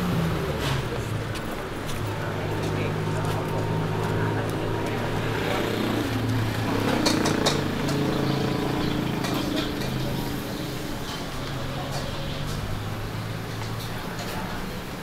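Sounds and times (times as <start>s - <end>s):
chatter of passers-by: 0.0s - 15.0s
low hum of traffic: 0.0s - 15.0s.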